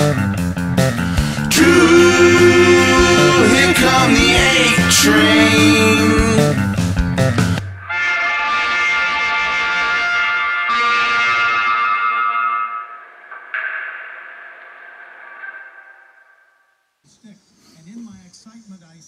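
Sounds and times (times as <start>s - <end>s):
rock band playing: 0.0s - 8.0s
distorted electric guitar chord: 0.0s - 10.2s.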